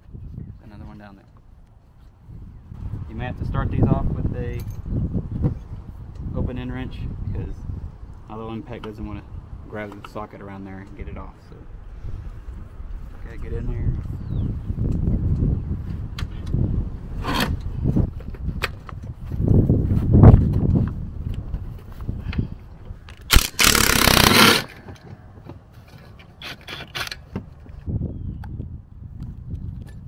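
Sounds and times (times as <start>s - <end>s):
cordless impact driver burst: 23.3s - 24.7s.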